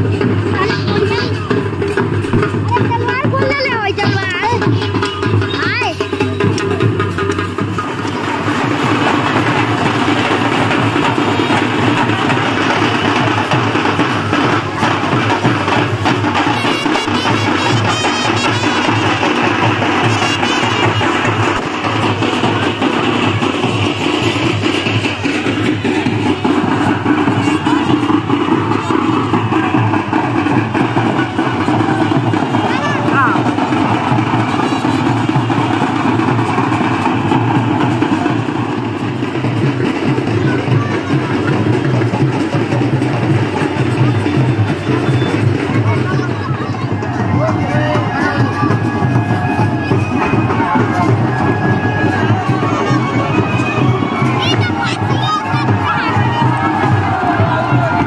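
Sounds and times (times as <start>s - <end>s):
music with drumming and voice: 0.0s - 58.0s.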